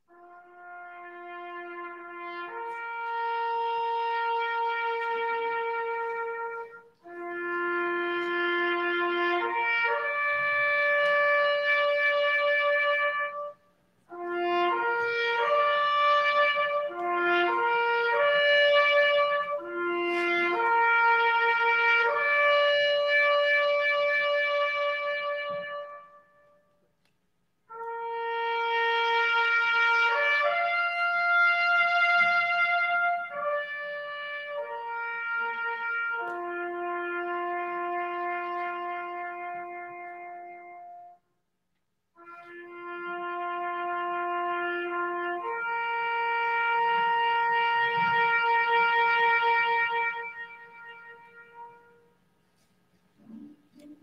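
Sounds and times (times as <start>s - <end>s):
solo trumpet bugle call: 0.0s - 26.8s, 27.7s - 41.3s, 42.2s - 54.0s.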